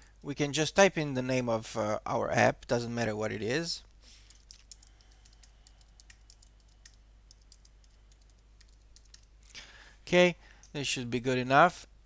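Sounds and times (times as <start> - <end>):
typing on computer keyboard: 4.2 - 9.3.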